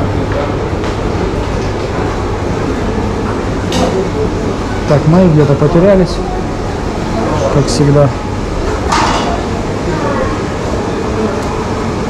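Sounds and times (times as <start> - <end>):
rumbling background noise: 0.0 - 12.0.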